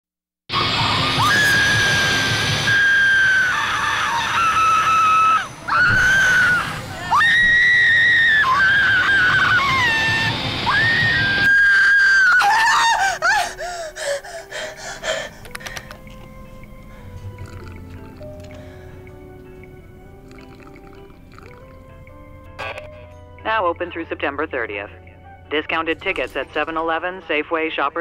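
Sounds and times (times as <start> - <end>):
people screaming: 0.5 - 13.9
rushing noise: 0.5 - 15.4.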